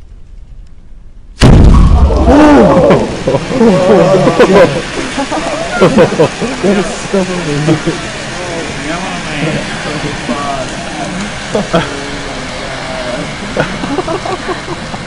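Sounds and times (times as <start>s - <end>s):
chemical reaction hissing and crackling: 1.4s - 15.0s
people laughing and exclaiming: 1.8s - 15.0s.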